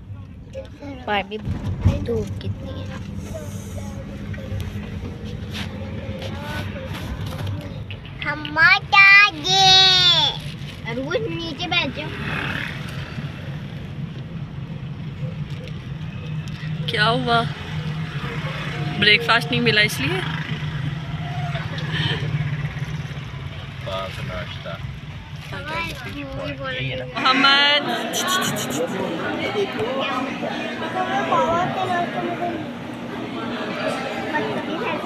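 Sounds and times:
car engine and road noise: 0:00.0 - 0:35.0.

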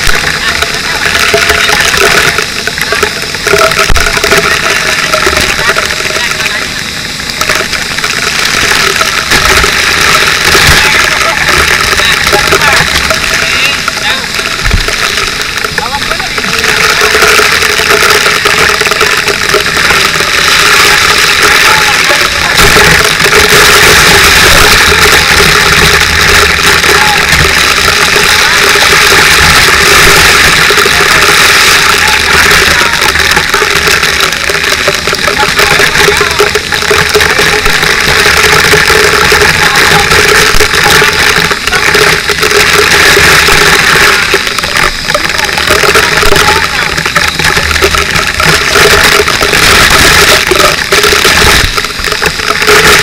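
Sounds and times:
hose spraying water: 0:00.0 - 0:53.0.

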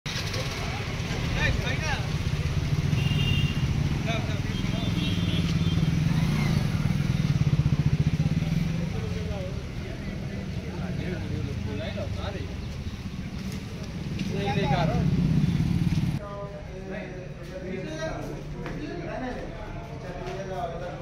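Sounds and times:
vehicle engine running: 0:00.1 - 0:16.2
people's voices: 0:03.6 - 0:21.0.

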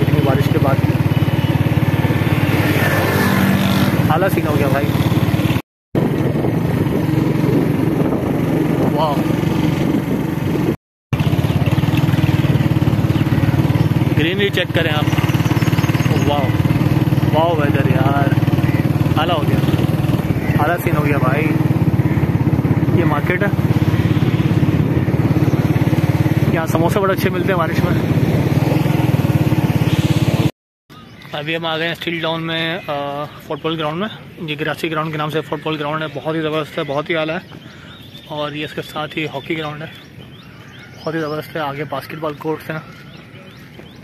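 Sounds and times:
small motorcycle engine running: 0:00.0 - 0:30.5.

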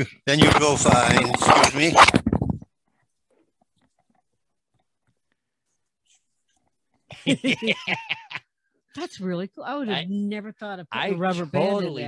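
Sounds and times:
man's voice trailing off: 0:11.2 - 0:12.0.

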